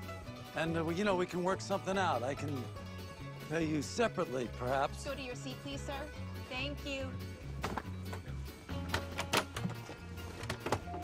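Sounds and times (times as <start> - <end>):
music: 0.0 - 11.0
luggage bin clicks and knocks: 7.6 - 11.0.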